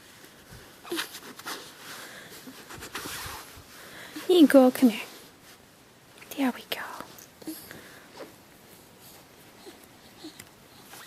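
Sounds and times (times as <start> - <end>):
person whispering: 6.2 - 7.2.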